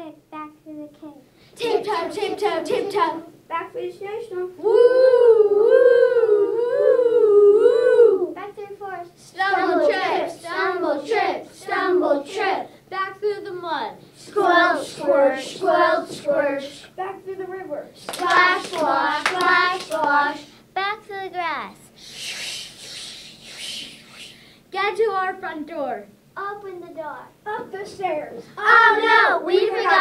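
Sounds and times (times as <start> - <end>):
children's voices singing woo: 4.6 - 8.4
children chanting: 9.4 - 12.7, 14.2 - 16.8, 18.1 - 20.5, 28.6 - 30.0
hand claps: 18.0 - 20.2.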